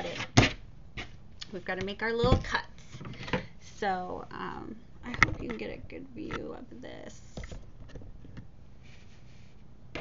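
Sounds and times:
low steady hum: 0:00.0 - 0:10.0
soft rustle: 0:08.8 - 0:09.7.

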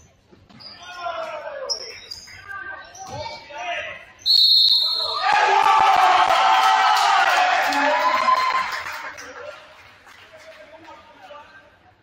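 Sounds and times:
crowd cheering and shouting: 0:05.0 - 0:08.9.

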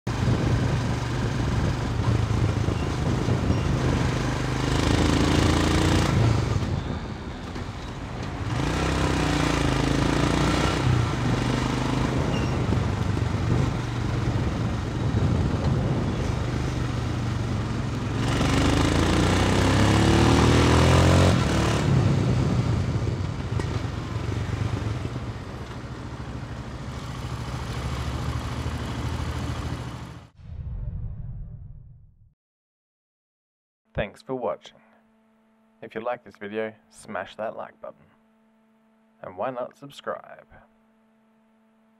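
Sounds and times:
wind noise on microphone: 0:00.1 - 0:05.2, 0:05.9 - 0:07.8, 0:10.9 - 0:17.6, 0:21.2 - 0:25.3
motorcycle engine accelerating: 0:00.1 - 0:30.4.

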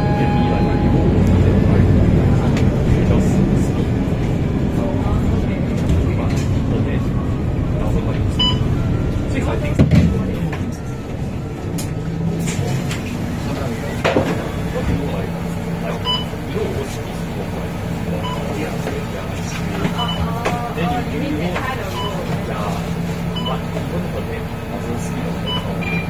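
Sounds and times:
bus diesel engine idling: 0:00.0 - 0:26.0
crowd chatter: 0:00.0 - 0:26.0
short electronic beeps: 0:08.4 - 0:08.7.

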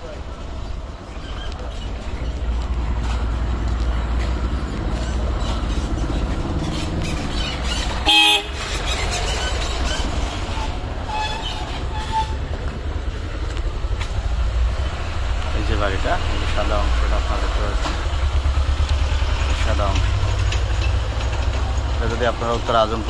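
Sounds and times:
street background rumble: 0:00.0 - 0:23.0
vehicle horn honking: 0:08.0 - 0:08.8.

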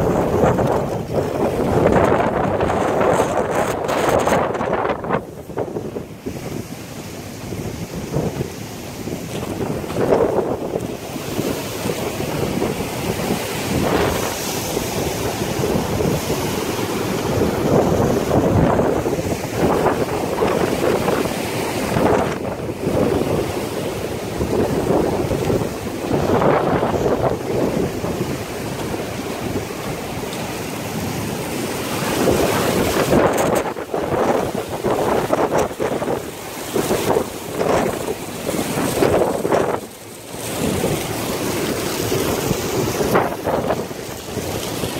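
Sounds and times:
surf breaking: 0:00.0 - 0:44.9
wind buffeting microphone: 0:00.0 - 0:44.9.

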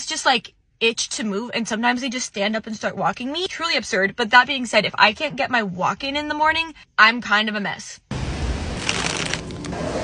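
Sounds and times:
paper bag rustling: 0:08.7 - 0:09.8.

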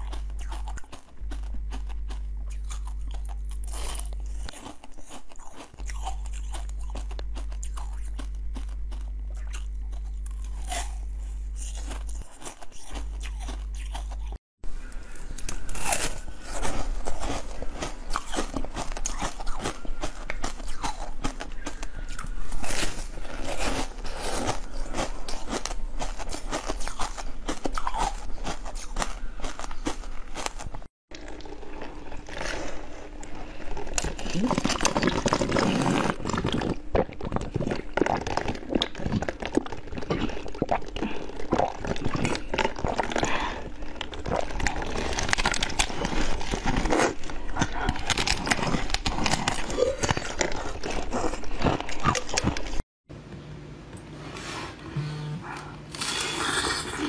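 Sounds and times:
chewing jelly sweets: 0:00.0 - 0:52.8
crunchy bites: 0:00.0 - 0:52.8
steady low hum: 0:00.0 - 0:57.0.

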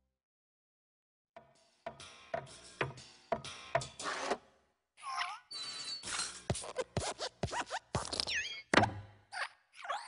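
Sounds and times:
springy metal squeaks and clicks: 0:05.5 - 0:06.9.

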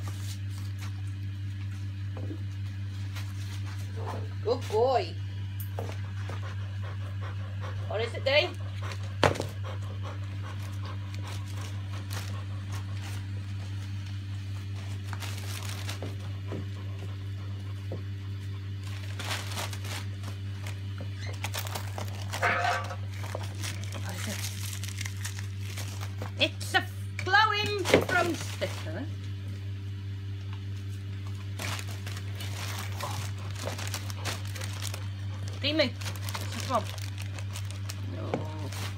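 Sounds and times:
wrapping paper crinkling and tearing: 0:00.0 - 0:01.4, 0:11.1 - 0:16.4, 0:18.7 - 0:26.4, 0:27.9 - 0:29.0, 0:31.2 - 0:38.9
steady low hum: 0:00.0 - 0:38.9.

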